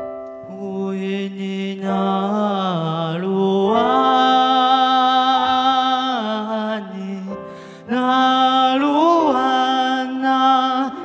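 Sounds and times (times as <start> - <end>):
keyboard accompaniment: 0.0 - 11.0
person singing long held notes: 0.4 - 11.0.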